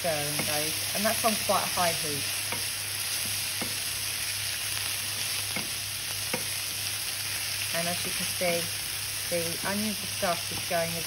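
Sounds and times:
vegetables sizzling in a frying pan: 0.0s - 11.0s
wooden spoon knocking on pan: 5.5s - 6.6s.

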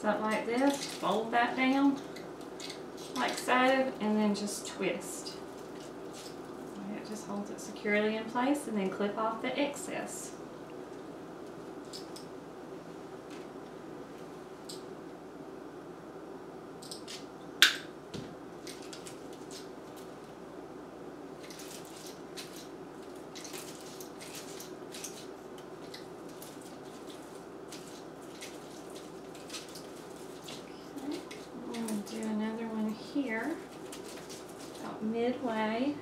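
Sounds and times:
woman's voice: 0.0s - 2.0s, 3.1s - 5.4s, 6.7s - 10.4s, 30.8s - 33.7s, 34.8s - 36.0s
wire clicking and rustling: 0.0s - 4.4s, 5.2s - 7.5s, 10.6s - 12.4s, 13.2s - 14.9s, 16.8s - 20.4s, 21.3s - 35.1s.

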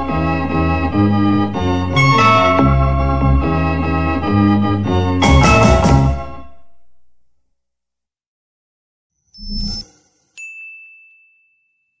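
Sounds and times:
bright ding: 9.6s - 12.0s.

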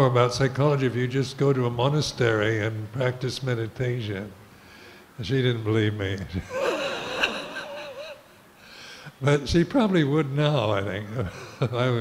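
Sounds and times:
man laughing quietly: 6.3s - 8.5s, 11.1s - 12.0s.

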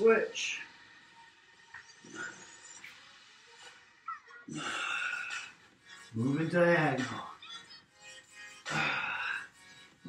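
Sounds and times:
loud breath: 8.7s - 9.8s.

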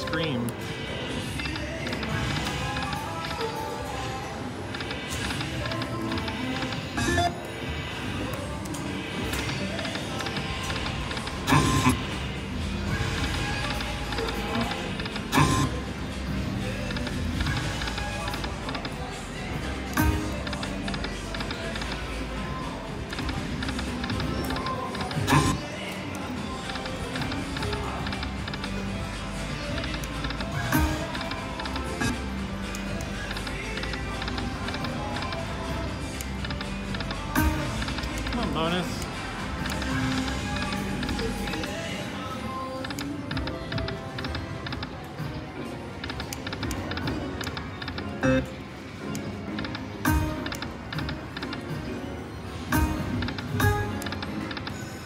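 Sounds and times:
slot machine music and effects: 0.0s - 55.0s
casino din: 13.8s - 15.9s.

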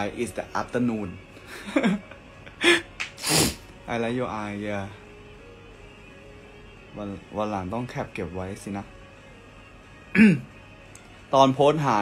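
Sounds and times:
man blowing breathy bursts of air: 2.7s - 3.7s.

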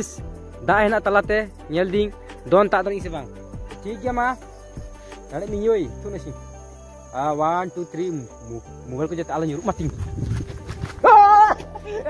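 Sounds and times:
wind rumble on microphone: 9.7s - 11.1s.

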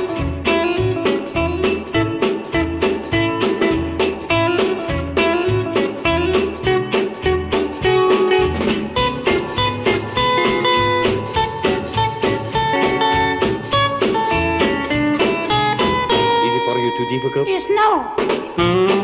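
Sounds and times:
plucked guitar lead over beat: 0.0s - 19.0s.

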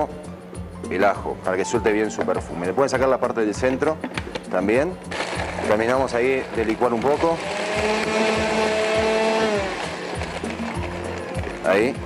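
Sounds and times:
background music: 0.0s - 12.0s
blender motor winding down: 5.1s - 11.2s.

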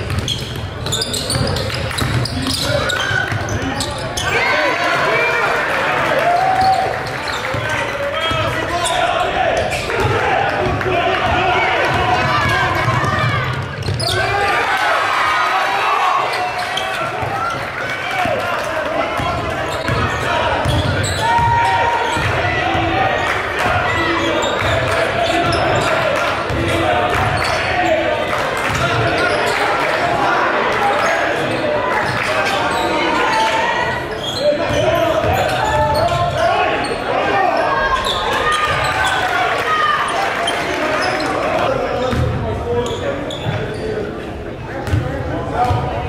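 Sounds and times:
basketball bouncing on court: 0.0s - 3.9s, 10.0s - 14.2s, 19.2s - 23.0s, 28.6s - 29.3s, 42.1s - 42.4s, 44.8s - 46.0s
players and spectators shouting: 0.0s - 44.1s.

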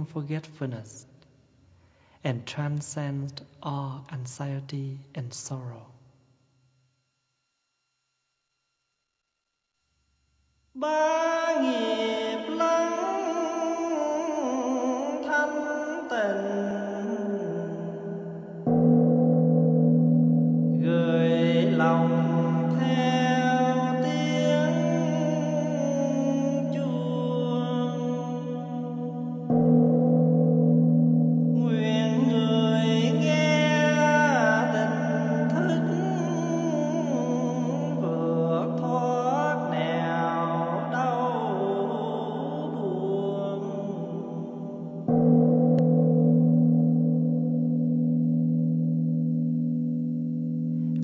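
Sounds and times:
person chanting: 0.0s - 1.1s, 2.2s - 6.0s, 10.8s - 18.7s, 20.8s - 29.8s, 31.6s - 45.2s
large temple bell ringing: 18.2s - 49.2s.

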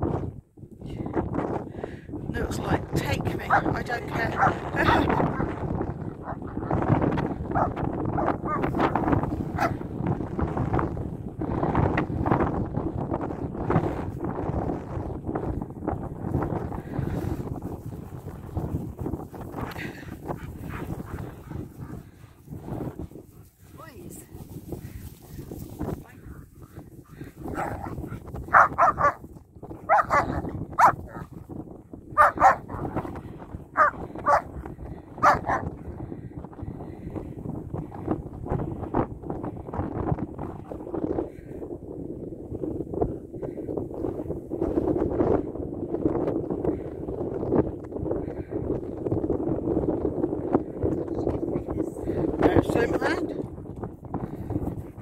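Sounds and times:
dogs barking: 3.5s - 6.8s, 7.5s - 8.8s, 9.5s - 9.8s, 27.0s - 29.2s, 29.8s - 31.3s, 32.2s - 33.0s, 33.8s - 34.5s, 35.2s - 35.7s
dogs play-growling: 7.3s - 8.9s, 19.6s - 23.6s, 26.3s - 29.2s.

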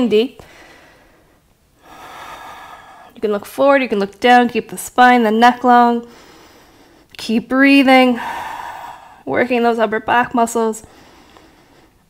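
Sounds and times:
woman breathing in through nose: 0.4s - 3.2s, 6.1s - 7.1s, 8.2s - 9.2s, 10.8s - 12.0s.

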